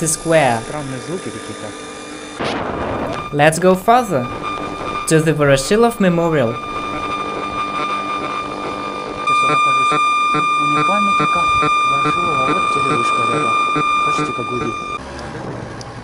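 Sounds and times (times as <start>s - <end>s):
detector high buzz: 0.0s - 15.0s
regular ticking: 2.7s - 15.0s.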